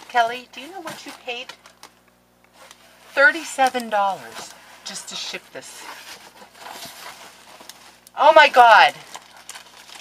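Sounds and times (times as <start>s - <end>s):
cardboard box rustling and scraping: 4.0s - 8.0s.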